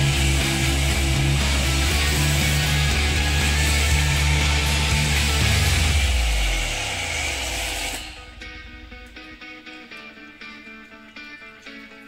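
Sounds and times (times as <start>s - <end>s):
guitar music: 0.0s - 6.9s, 7.5s - 12.0s
pressure washer motor: 0.0s - 8.5s.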